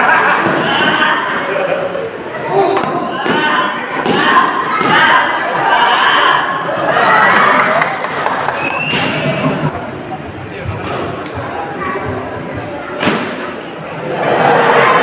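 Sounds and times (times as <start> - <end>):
spectators talking and shouting: 0.0 - 15.0.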